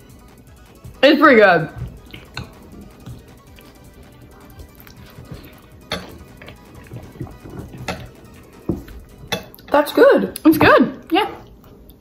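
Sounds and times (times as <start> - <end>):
quiet background music: 0.0 - 12.0
forks scraping against bowls: 2.1 - 3.8, 4.8 - 9.7.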